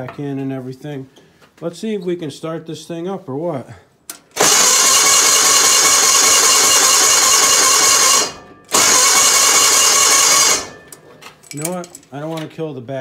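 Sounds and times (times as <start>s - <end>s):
engine cranked by electric starter: 4.2s - 10.9s.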